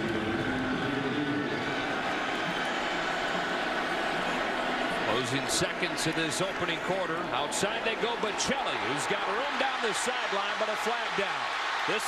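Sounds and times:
stadium crowd roar: 0:00.0 - 0:12.0.

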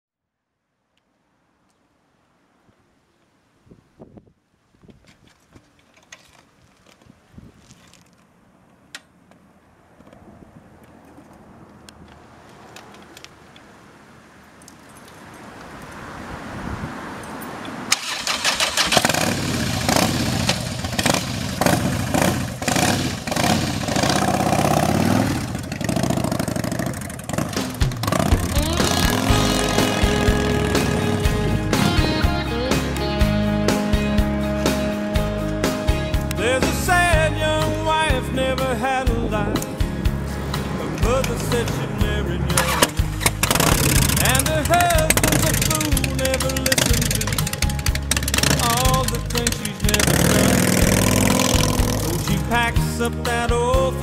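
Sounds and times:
motorcycle engine starting and running: 0:17.9 - 0:54.0
music: 0:28.1 - 0:54.0.

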